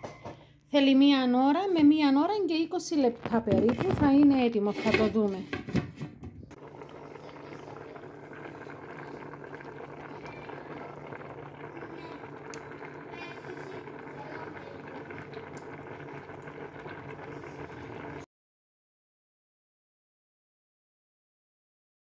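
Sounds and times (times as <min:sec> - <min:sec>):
soup boiling and bubbling: 0:06.5 - 0:18.3.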